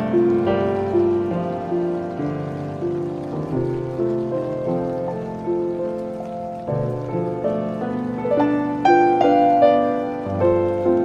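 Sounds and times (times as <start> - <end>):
piano playing slow chords: 0.0 - 11.0
rain hissing: 0.0 - 11.0.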